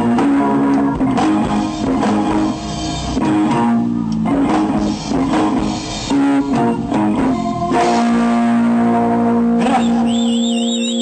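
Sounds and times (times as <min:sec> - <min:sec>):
rock band sustained chord: 0:00.0 - 0:10.8
high warbling whistle: 0:09.7 - 0:11.0.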